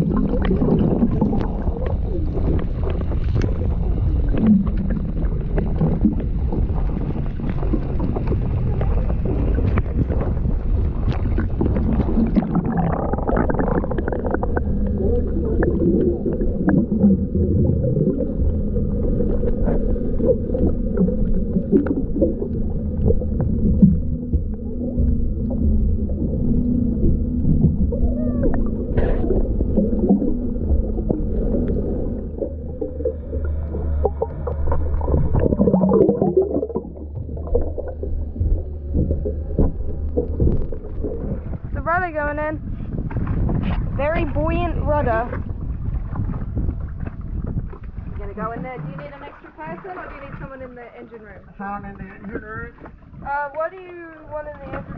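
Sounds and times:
bubbling pops: 0.0 - 3.6, 4.3 - 18.6, 19.3 - 26.4, 27.4 - 42.5
underwater rumble of moving water: 0.0 - 54.9.

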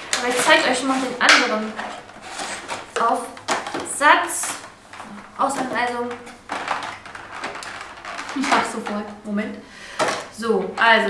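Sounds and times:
plastic packaging crackling: 0.0 - 9.3.

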